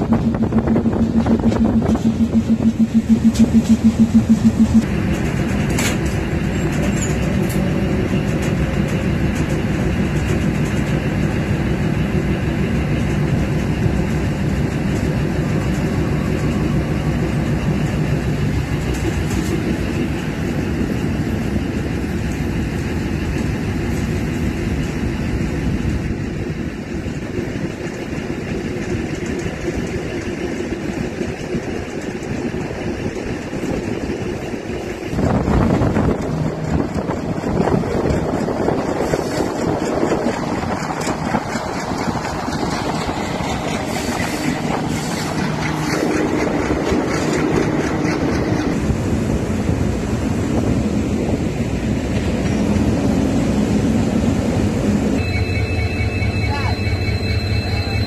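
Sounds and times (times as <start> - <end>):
wind buffeting microphone: 0.0 - 6.8, 12.4 - 55.1
train engine and rail noise: 0.0 - 58.0.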